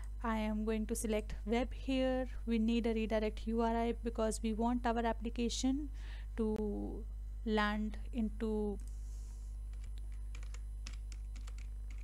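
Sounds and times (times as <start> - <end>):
steady low hum: 0.0 - 12.0
keyboard typing: 9.7 - 12.0.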